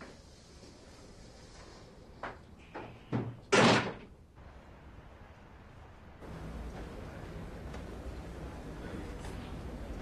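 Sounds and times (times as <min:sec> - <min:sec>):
wooden door banging shut: 0:03.2 - 0:04.1.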